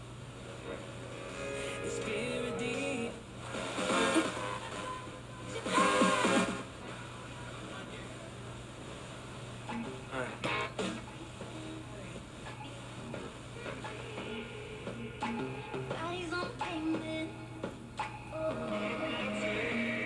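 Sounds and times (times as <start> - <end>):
steady low hum: 0.0 - 20.0
radio tuning across stations: 0.4 - 16.4.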